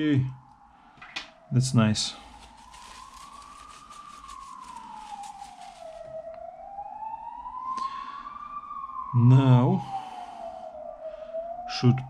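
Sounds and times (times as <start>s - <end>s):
siren wailing: 0.0s - 12.0s.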